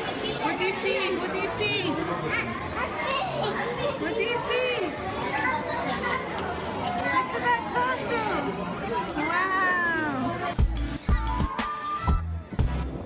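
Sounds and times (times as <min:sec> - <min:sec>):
children's voices: 0:00.0 - 0:12.4
people chattering: 0:00.0 - 0:13.0.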